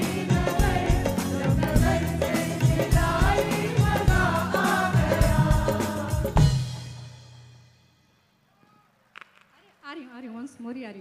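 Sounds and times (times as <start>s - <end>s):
chorus singing into microphones: 0.0s - 6.8s
drum and percussion backing: 0.0s - 8.1s.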